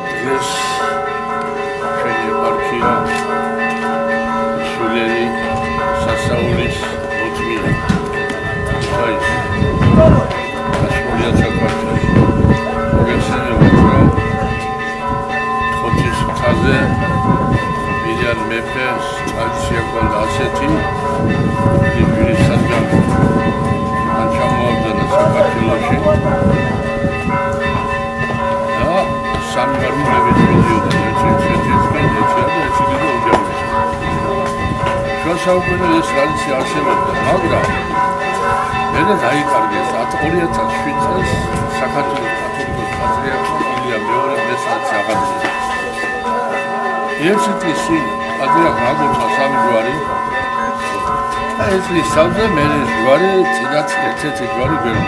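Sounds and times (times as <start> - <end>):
man speaking: 0.0 - 1.0, 1.9 - 3.2, 4.6 - 5.4, 6.0 - 7.8, 8.8 - 12.1, 13.0 - 14.2, 15.8 - 16.9, 18.0 - 20.8, 21.9 - 23.0, 24.1 - 26.4, 28.8 - 33.6, 35.2 - 37.8, 39.0 - 45.6, 47.2 - 50.1, 51.6 - 55.0
church bells ringing: 0.0 - 55.0.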